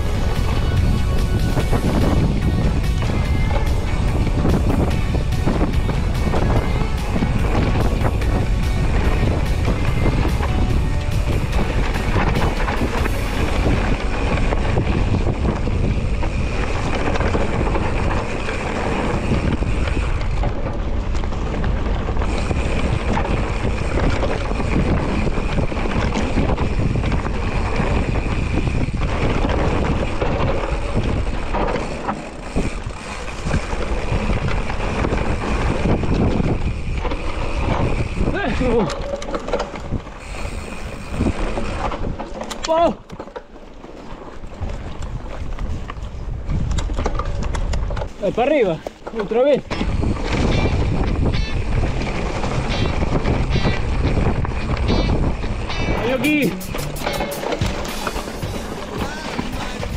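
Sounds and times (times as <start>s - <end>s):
bike tyres on dirt track: 0.0s - 59.9s
wind rumbling on microphone: 0.0s - 59.9s.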